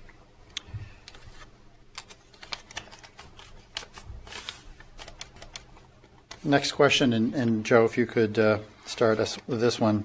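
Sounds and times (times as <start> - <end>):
papers rustling and clicking: 0.9 - 6.6.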